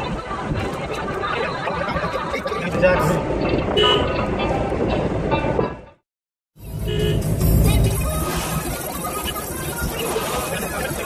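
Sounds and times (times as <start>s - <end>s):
vehicle rumble from inside: 6.6s - 11.0s.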